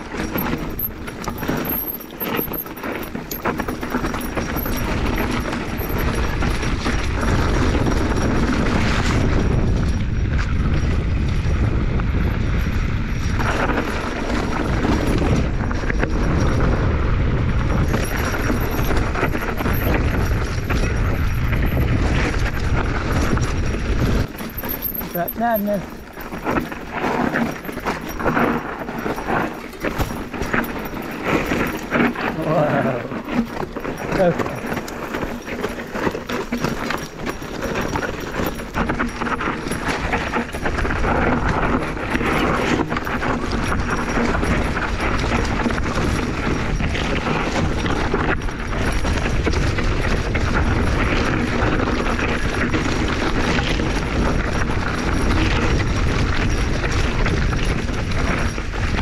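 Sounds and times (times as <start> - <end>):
mountain bike rattling over rocks: 0.0 - 59.0
wind noise on camera: 0.0 - 59.0.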